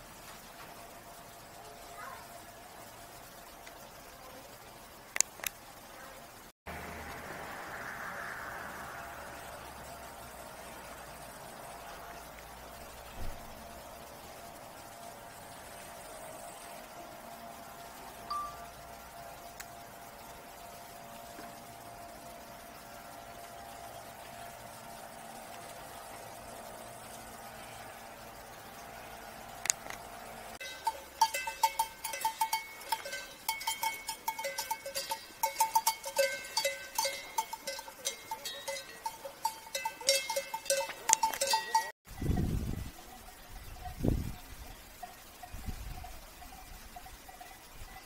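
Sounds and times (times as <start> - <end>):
faint mechanical hum: 0.0 - 41.1
background hiss: 0.0 - 48.0
low rumble: 6.7 - 13.5
cowbells clanking: 18.3 - 18.8, 30.6 - 44.0, 44.9 - 48.0.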